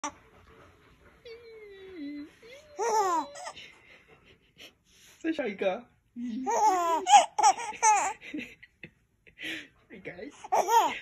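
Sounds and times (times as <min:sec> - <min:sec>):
baby cooing: 0:01.9 - 0:03.6, 0:06.4 - 0:08.2
baby laughing: 0:02.8 - 0:03.8, 0:06.4 - 0:08.4, 0:10.4 - 0:11.0.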